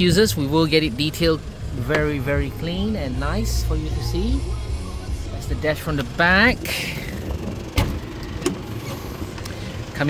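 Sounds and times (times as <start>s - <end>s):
diesel engine idling: 0.0s - 10.0s
car door latch click: 7.3s - 8.7s.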